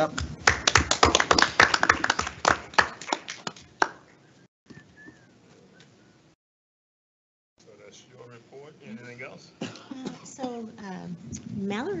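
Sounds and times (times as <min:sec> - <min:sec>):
small group applauding: 0:00.0 - 0:04.2.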